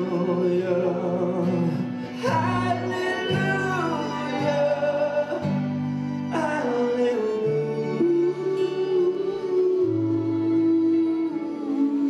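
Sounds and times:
live band and singers: 0.0 - 12.0
voice singing with vibrato: 0.0 - 12.0.

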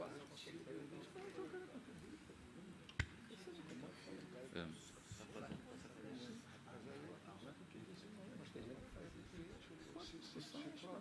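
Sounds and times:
faint indistinct voices: 0.0 - 11.0.

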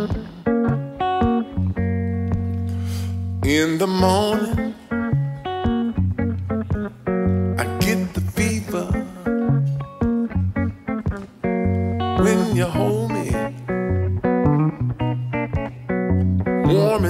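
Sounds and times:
picked blues guitar: 0.0 - 17.0
walking bass line: 0.0 - 17.0.

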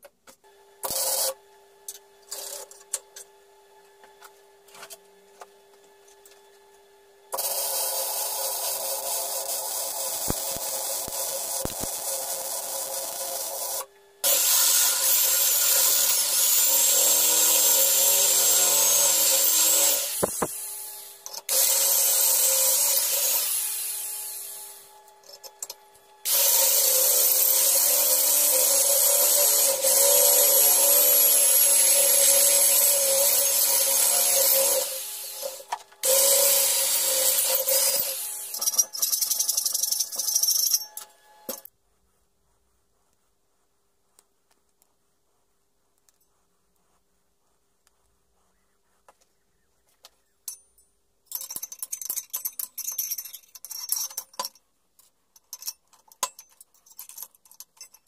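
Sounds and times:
electric drill boring through steel: 0.8 - 1.4, 7.3 - 41.7
welder crackling: 7.3 - 41.7.

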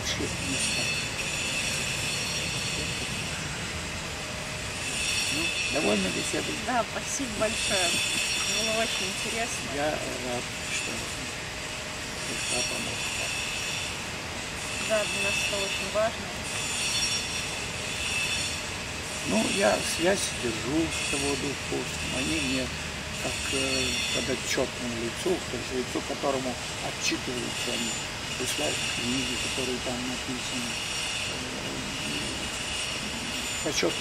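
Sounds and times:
outdoor background noise: 0.0 - 34.0.

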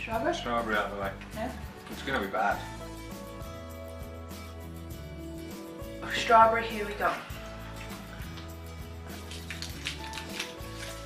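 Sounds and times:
background music: 0.0 - 11.0
candy wrappers crinkling: 9.2 - 11.0.

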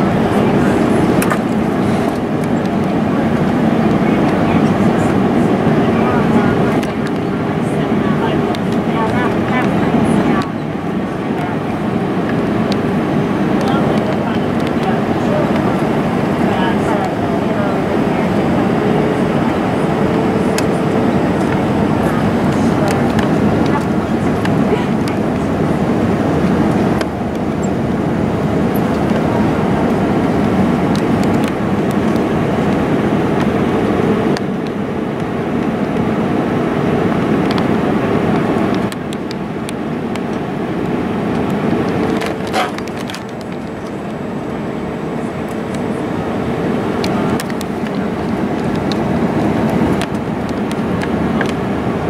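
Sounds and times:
airliner cabin roar: 0.0 - 52.0.

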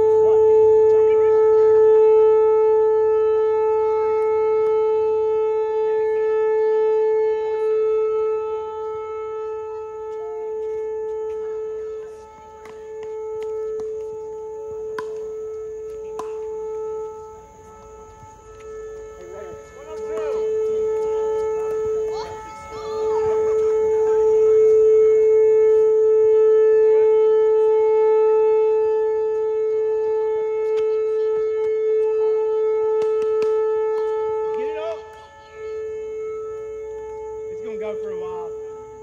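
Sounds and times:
droning hum: 0.0 - 39.0
faint high-pitched buzz: 0.0 - 39.0.

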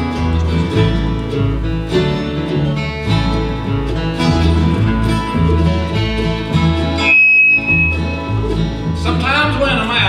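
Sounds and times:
acoustic guitar picking: 0.0 - 10.0
banjo picking: 0.0 - 10.0
upright bass pulsing: 0.0 - 10.0.

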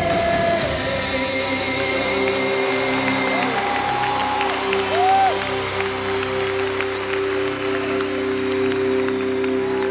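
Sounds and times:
crowd cheering and applause: 0.0 - 9.9
live band holding sustained notes: 0.0 - 9.9.

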